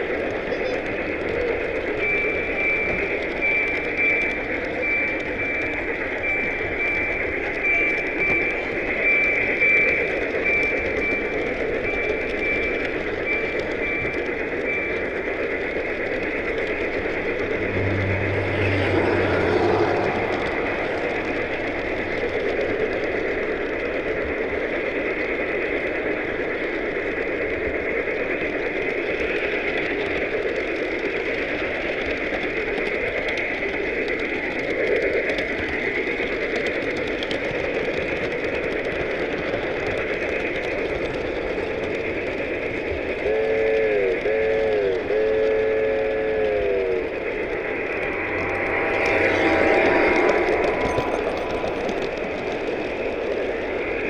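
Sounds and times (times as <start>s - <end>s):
model train rolling rattle: 0.0s - 54.0s
brief low hum: 16.6s - 23.2s, 46.7s - 53.3s.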